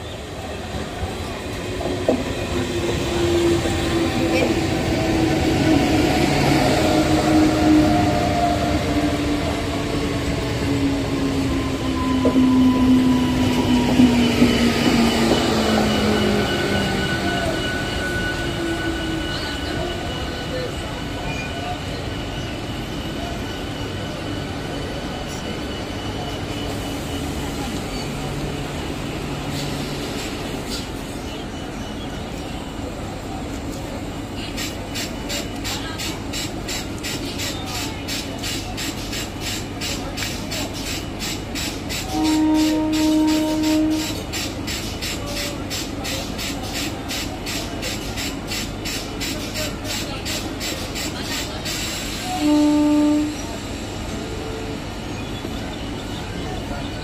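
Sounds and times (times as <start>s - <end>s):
train wheels rumbling on rail: 0.0s - 57.0s
train horn blast: 42.1s - 44.2s, 52.3s - 53.6s.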